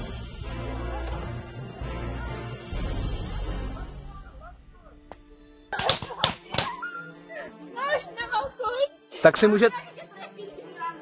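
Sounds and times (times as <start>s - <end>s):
paintball marker shots: 5.8s - 6.8s.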